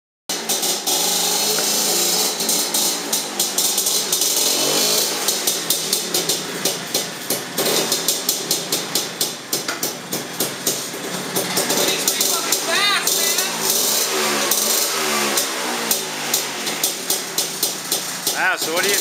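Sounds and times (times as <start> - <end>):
motor scooter engine running: 0.3 - 19.0.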